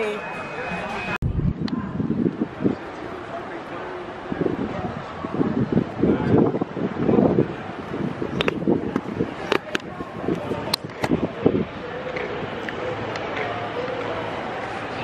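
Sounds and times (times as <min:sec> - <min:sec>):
wind noise on microphone: 0:01.0 - 0:03.4, 0:04.1 - 0:13.6.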